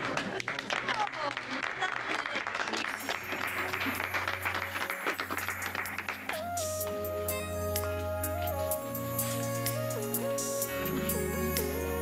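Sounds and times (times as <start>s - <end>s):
guests clapping: 0.0s - 7.1s
slow music with held notes: 3.2s - 12.0s.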